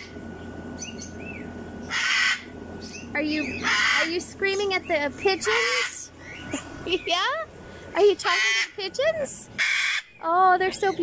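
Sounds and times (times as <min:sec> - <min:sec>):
cockatoo screaming: 0:01.9 - 0:02.5, 0:03.5 - 0:04.2, 0:05.4 - 0:06.1, 0:08.2 - 0:08.8, 0:09.6 - 0:10.1.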